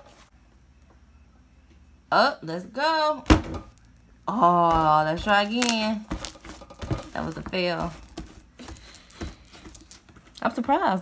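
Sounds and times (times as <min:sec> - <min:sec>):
slime squishing: 0:04.7 - 0:10.5.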